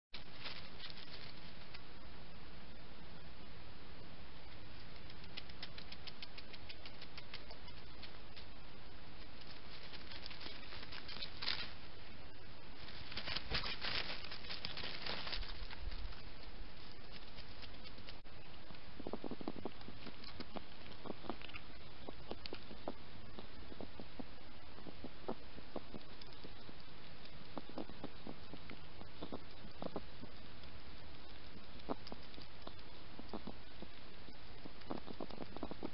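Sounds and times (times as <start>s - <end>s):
hedgehog rustling in dry leaves: 0.2s - 1.8s, 9.2s - 12.1s, 12.7s - 18.3s
background hiss: 0.2s - 35.9s
hedgehog eating wet clicks: 4.8s - 8.5s, 25.7s - 35.9s.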